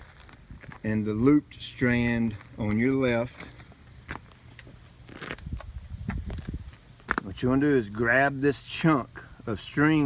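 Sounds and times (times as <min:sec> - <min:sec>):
plastic bag rustling: 0:00.0 - 0:01.0.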